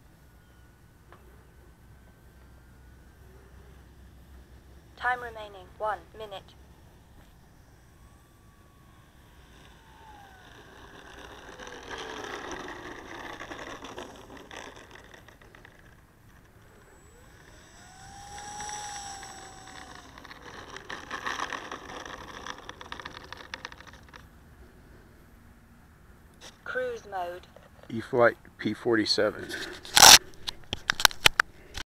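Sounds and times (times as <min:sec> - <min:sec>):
electric motor whining: 0:00.0 - 0:24.3
landing gear rattling on pavement: 0:09.0 - 0:24.3.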